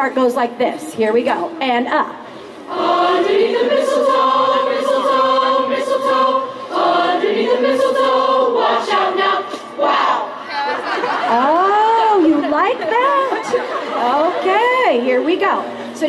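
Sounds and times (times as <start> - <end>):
children's choir singing: 2.7 - 11.5.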